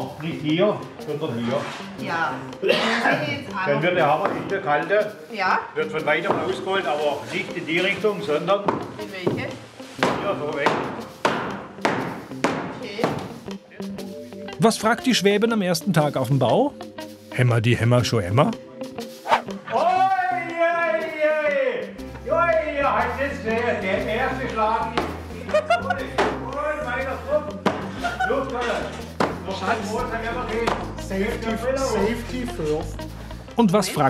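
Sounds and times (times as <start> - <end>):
background music: 0.0 - 34.0
hammer striking wood: 10.0 - 13.3, 26.2 - 26.4, 27.6 - 27.9, 29.2 - 29.4, 30.6 - 30.9.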